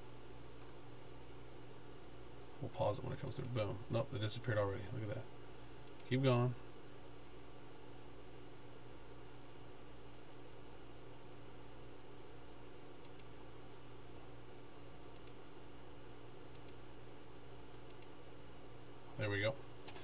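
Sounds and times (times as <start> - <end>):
electrical hum and hiss: 0.0 - 20.0
computer mouse clicks: 5.8 - 6.1, 13.0 - 14.0, 15.1 - 15.4, 16.5 - 16.8, 17.7 - 18.2.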